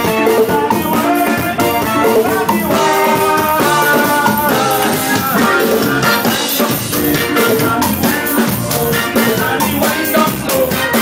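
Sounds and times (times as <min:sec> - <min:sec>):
drum kit: 0:00.0 - 0:11.0
guitar: 0:00.0 - 0:11.0
live band playing dance music: 0:00.0 - 0:11.0.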